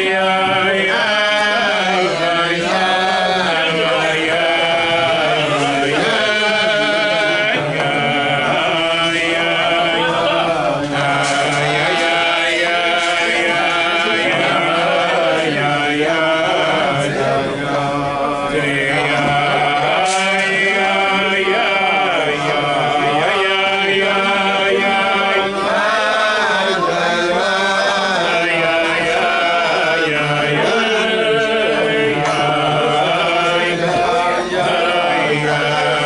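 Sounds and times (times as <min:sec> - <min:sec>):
men singing wordless melody: 0:00.0 - 0:36.0.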